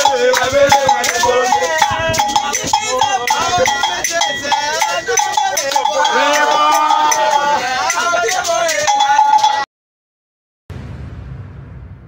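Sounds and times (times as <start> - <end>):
men chanting together: 0.0 - 9.6
sharp percussive strikes: 0.0 - 9.7
hand claps: 0.3 - 1.3.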